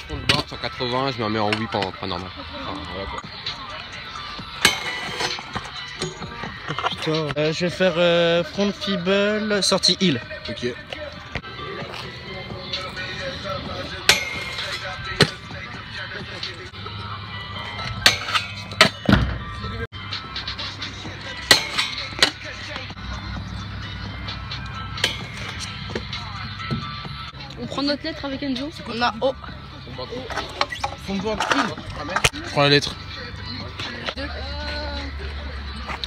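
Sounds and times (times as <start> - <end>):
scooter wheels rolling on concrete: 0.0 - 19.9, 20.6 - 36.0.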